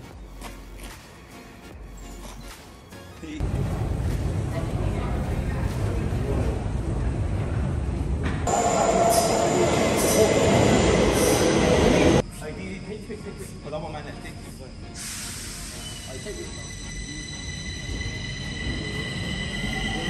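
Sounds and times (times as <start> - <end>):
train rumble: 3.4 - 12.3
steel wheel squeal: 13.3 - 20.0.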